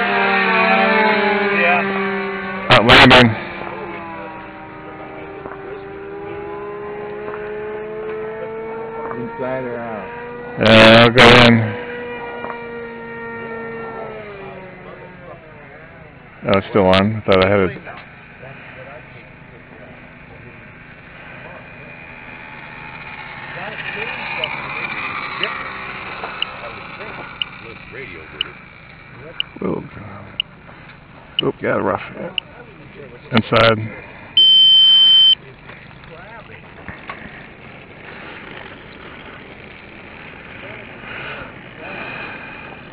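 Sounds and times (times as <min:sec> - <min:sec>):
model airplane motor whine: 0:00.0 - 0:42.9
faint outdoor background hiss: 0:01.7 - 0:42.9
high electronic beep: 0:34.4 - 0:35.4.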